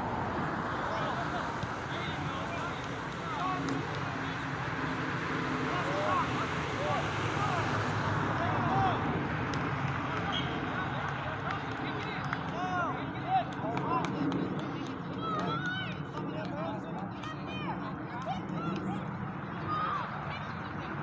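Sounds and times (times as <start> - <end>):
distant shouts of players: 5.6 - 9.3, 10.0 - 21.0.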